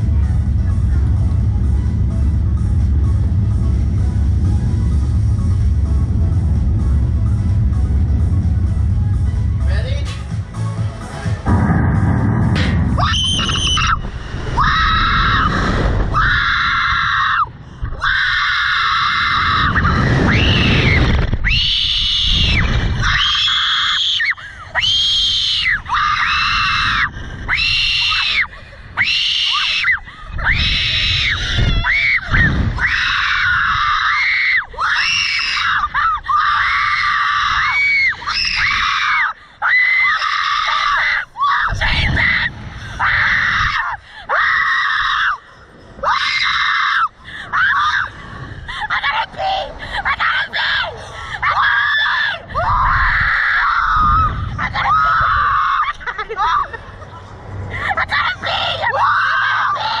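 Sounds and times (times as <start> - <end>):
wind rumble on microphone: 0.0 - 10.0, 10.8 - 39.3, 40.6 - 59.2
people screaming: 12.9 - 57.1, 57.7 - 60.0.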